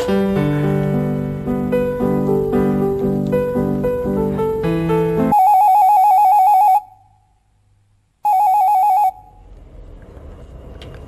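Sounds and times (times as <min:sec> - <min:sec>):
electronic telephone ringing: 0:05.3 - 0:07.0, 0:08.2 - 0:09.4.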